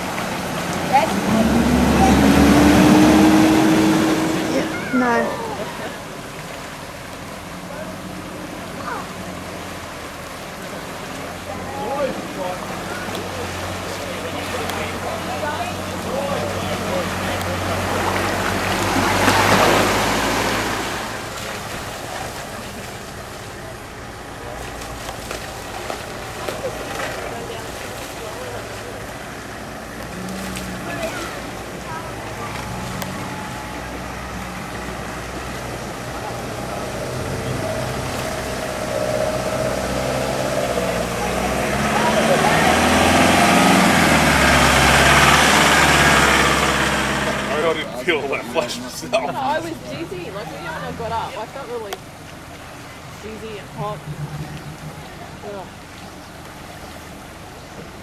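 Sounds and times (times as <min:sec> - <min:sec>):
river water rushing: 0:00.0 - 0:58.0
vehicle engine humming: 0:00.0 - 0:58.0.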